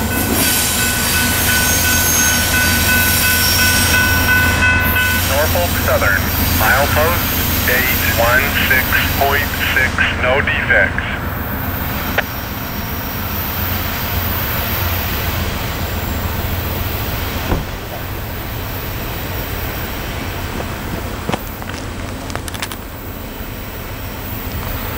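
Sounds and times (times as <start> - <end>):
train rolling away: 0.0 - 24.9.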